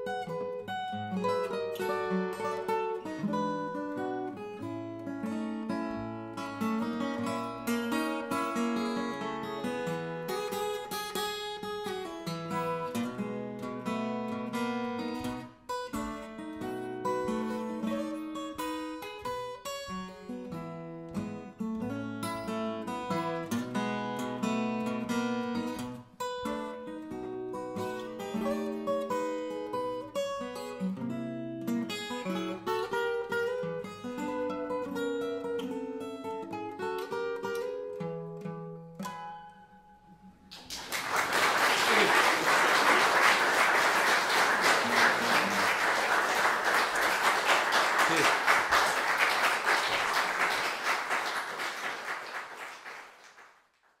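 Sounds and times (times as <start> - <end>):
fingerpicked acoustic guitar: 0.0 - 40.6
audience applause: 40.5 - 53.9.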